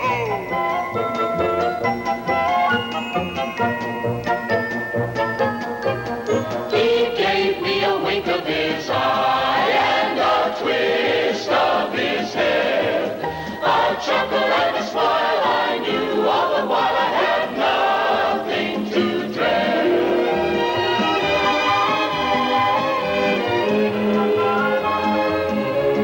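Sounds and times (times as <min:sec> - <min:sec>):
choir singing with accompaniment: 0:06.5 - 0:26.0.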